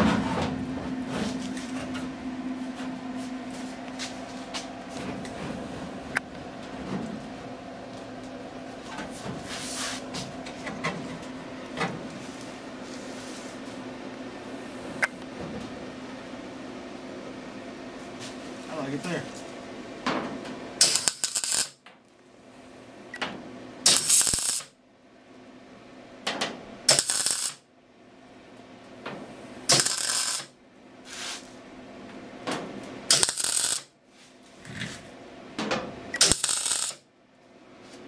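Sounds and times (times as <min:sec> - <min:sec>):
welder arc crackling: 0:20.8 - 0:21.8, 0:23.9 - 0:24.7, 0:26.9 - 0:27.6, 0:29.7 - 0:30.5, 0:33.1 - 0:33.9, 0:36.2 - 0:37.0.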